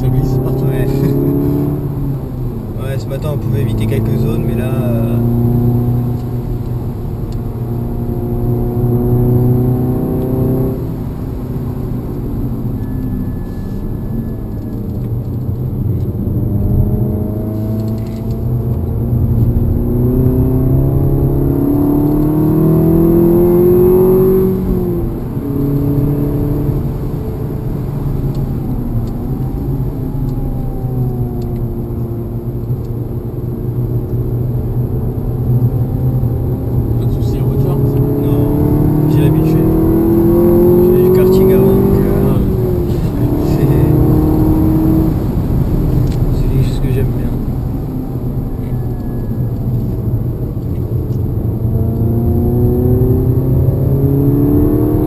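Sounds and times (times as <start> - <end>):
car engine accelerating: 0.0 - 55.0.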